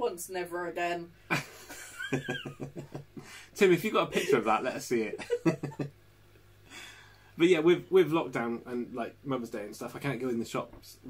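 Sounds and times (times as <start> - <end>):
man laughing: 1.3 - 5.9.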